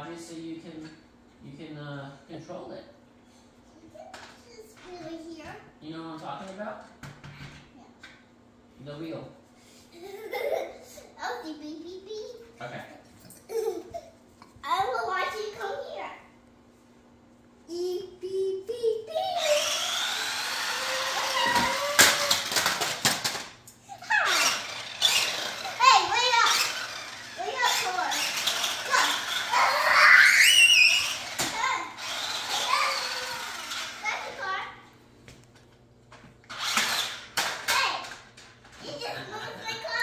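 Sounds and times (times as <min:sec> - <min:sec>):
toddler squealing and babbling: 0:17.7 - 0:20.0, 0:23.9 - 0:34.5.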